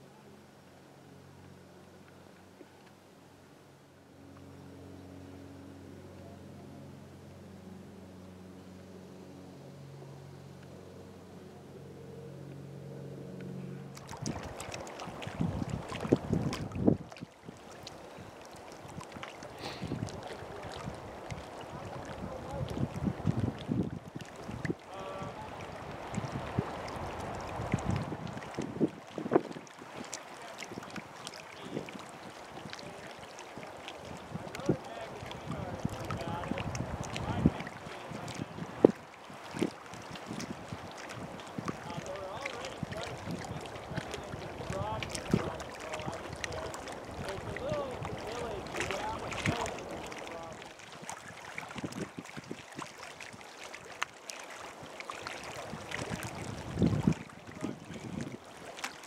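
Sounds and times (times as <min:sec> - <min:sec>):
wind gusting across microphone: 0:14.1 - 0:17.6, 0:18.8 - 0:33.0, 0:33.6 - 0:52.9, 0:55.6 - 0:58.6.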